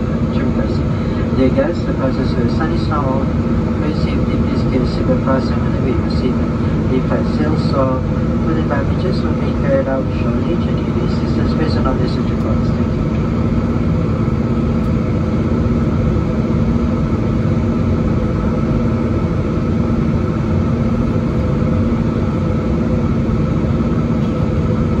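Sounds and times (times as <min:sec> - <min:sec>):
jet engine drone: 0:00.0 - 0:25.0
steady low hum: 0:00.0 - 0:25.0.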